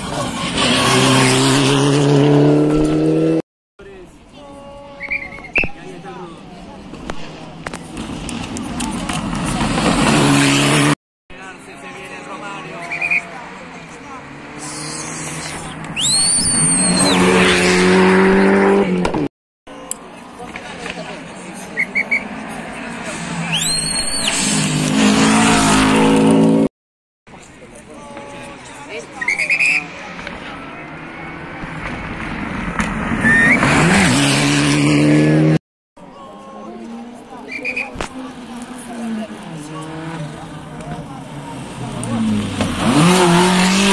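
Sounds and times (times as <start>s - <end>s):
rally car engine at high revs: 0.0s - 3.4s, 9.3s - 11.0s, 16.6s - 19.3s, 31.3s - 35.6s, 38.4s - 43.9s
distant car engine: 12.0s - 19.3s
brief high whistle: 16.0s - 17.3s, 23.5s - 24.4s, 33.2s - 33.6s.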